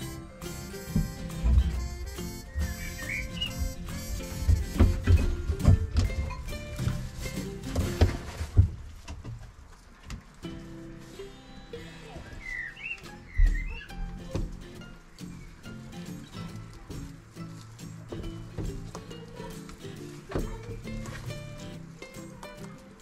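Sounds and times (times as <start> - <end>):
background music: 0.0 - 8.5
low thumps: 0.5 - 9.3
bird chirps: 2.3 - 3.9, 12.4 - 14.1.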